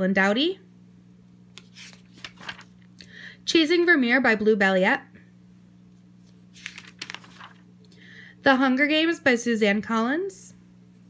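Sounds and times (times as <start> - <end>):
steady low hum: 0.0 - 11.0
paper page rustling: 1.6 - 2.9, 6.2 - 7.7.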